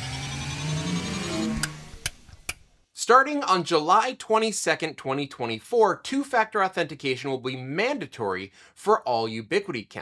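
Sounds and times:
synth tones rising in pitch: 0:00.0 - 0:02.1.

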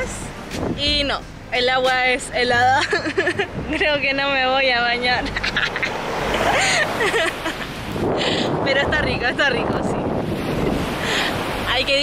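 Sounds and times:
wind buffeting microphone: 0:00.0 - 0:05.8, 0:06.4 - 0:12.0
small waves washing onto sand: 0:05.9 - 0:12.0.

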